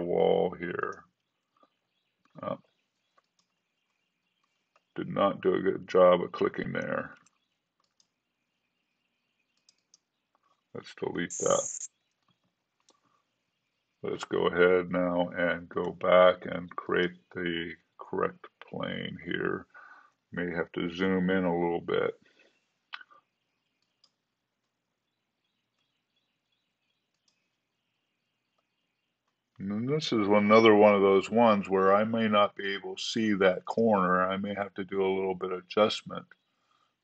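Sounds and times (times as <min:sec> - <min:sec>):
computer mouse clicks: 0:03.1 - 0:04.9, 0:07.2 - 0:08.2, 0:09.5 - 0:10.6, 0:11.3 - 0:13.1, 0:23.7 - 0:24.2, 0:27.1 - 0:27.5
low hiss: 0:10.8 - 0:11.9.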